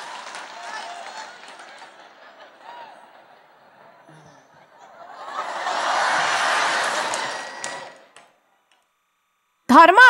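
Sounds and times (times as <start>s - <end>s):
sharp claps: 0.0s - 2.6s, 6.4s - 8.9s
audience laughter: 0.5s - 8.2s.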